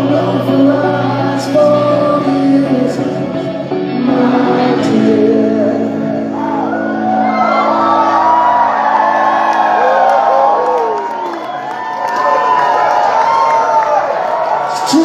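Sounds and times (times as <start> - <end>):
live rock band playing: 0.0 - 9.8
electric guitar: 0.0 - 11.8
audience whooping and cheering: 6.3 - 15.0.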